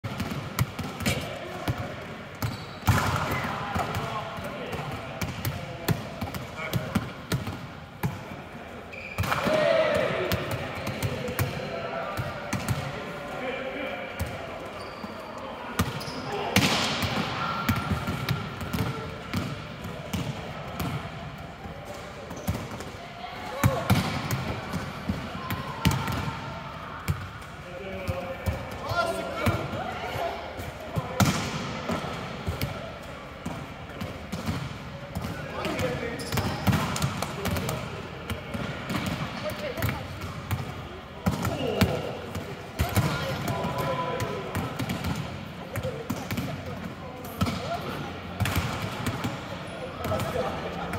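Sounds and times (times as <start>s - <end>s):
volleyballs smacking and bouncing: 0.0s - 8.4s, 9.0s - 13.1s, 15.8s - 26.4s, 30.8s - 50.9s
players calling and chatting: 0.6s - 50.9s.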